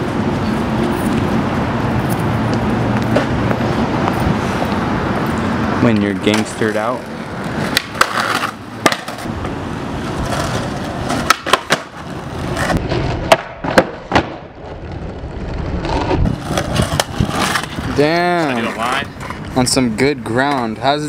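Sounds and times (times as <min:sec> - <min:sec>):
skateboard clacking on ground: 0:05.8 - 0:15.2, 0:15.8 - 0:19.6
skateboard sliding along ledge: 0:06.2 - 0:19.5
skateboard rolling on tiles: 0:06.3 - 0:19.5.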